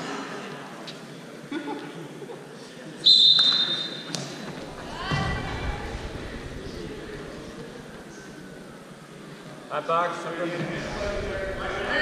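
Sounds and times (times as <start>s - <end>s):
referee's whistle blast: 3.0s - 4.1s.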